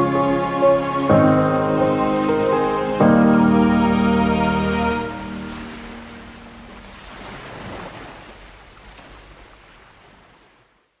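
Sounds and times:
surf washing onto beach: 0:01.7 - 0:10.7.

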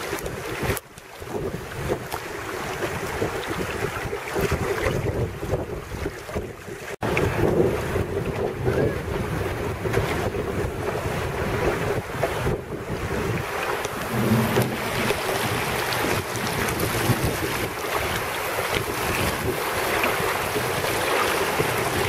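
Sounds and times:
choppy water splashing: 0:00.0 - 0:22.0
wind buffeting microphone: 0:00.0 - 0:22.0.

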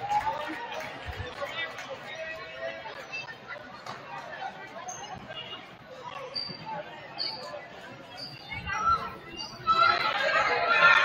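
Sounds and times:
voices talking in a gymnasium: 0:00.0 - 0:11.0.

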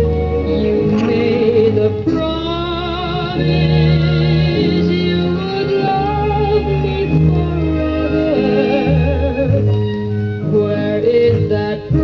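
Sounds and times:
band with steady bass line: 0:00.0 - 0:12.0
woman singing pop song: 0:00.4 - 0:09.4, 0:10.4 - 0:12.0.

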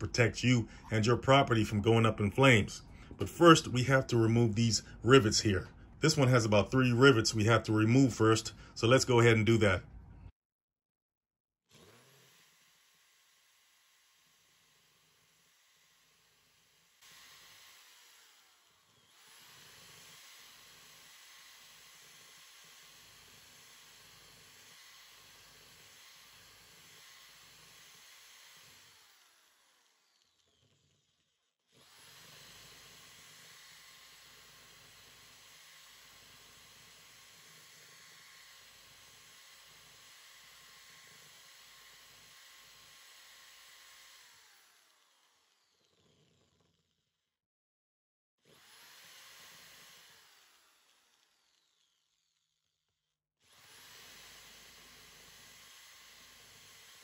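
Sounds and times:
cordless drill whirring: 0:11.7 - 0:47.2, 0:48.4 - 0:57.0.

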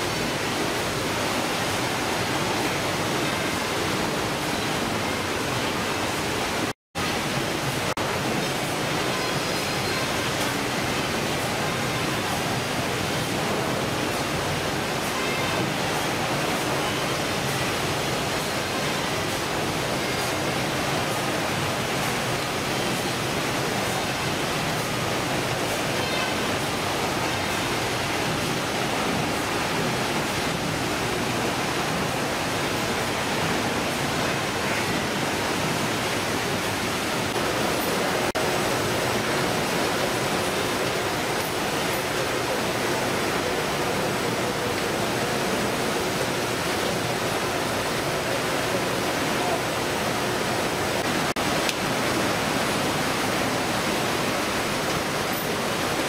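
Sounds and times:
fish-processing machinery: 0:00.0 - 0:56.0
running water: 0:00.0 - 0:56.0.

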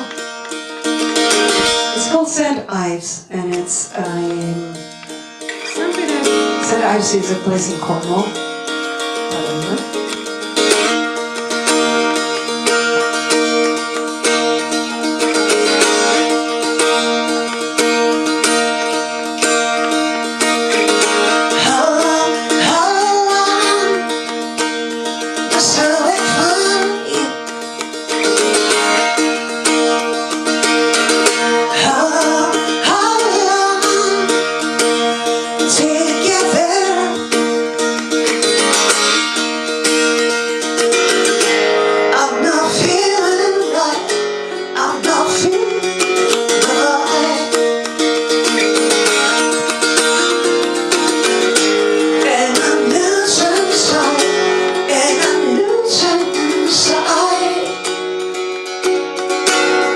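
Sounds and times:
strummed acoustic guitar: 0:00.0 - 0:59.9
woman singing: 0:01.6 - 0:08.5, 0:09.2 - 0:10.0, 0:20.8 - 0:27.8, 0:31.0 - 0:38.0, 0:42.1 - 0:47.9, 0:48.8 - 0:58.1.

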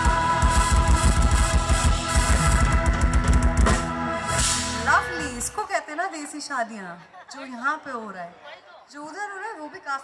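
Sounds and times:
fast drum beat: 0:00.0 - 0:05.0
live band playing: 0:00.0 - 0:06.4.

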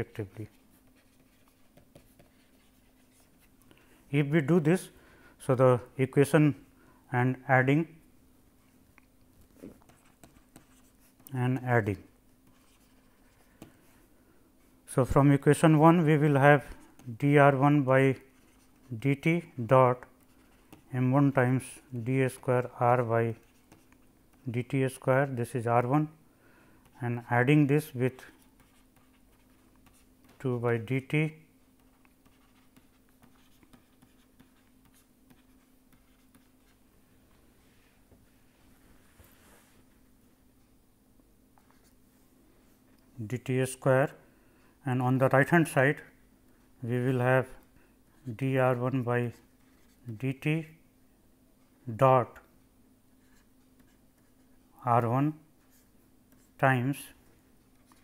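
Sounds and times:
low steady hum: 0:00.0 - 0:58.0
stylus scratching on tablet: 0:00.3 - 0:03.5, 0:09.6 - 0:13.9, 0:15.6 - 0:26.1, 0:26.8 - 0:36.9, 0:48.2 - 0:50.7, 0:53.2 - 0:54.6
stylus tapping and scratching tablet: 0:00.4 - 0:03.5, 0:09.4 - 0:11.4, 0:23.3 - 0:25.1, 0:31.6 - 0:36.8.

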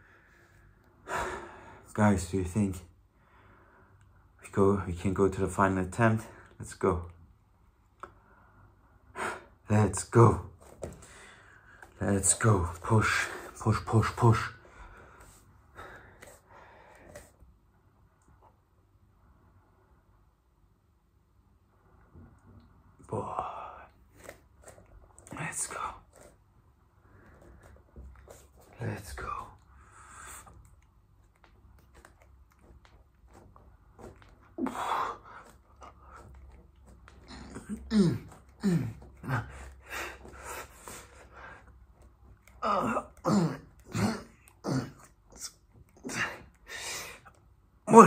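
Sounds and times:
man grunting and exhaling hard: 0:37.3 - 0:40.3, 0:42.6 - 0:45.0.

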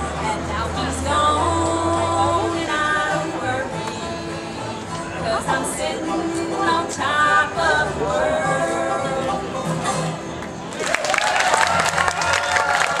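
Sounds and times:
women singing together: 0:00.0 - 0:10.0
bluegrass band playing: 0:00.0 - 0:13.0
audience applauding: 0:10.7 - 0:13.0.

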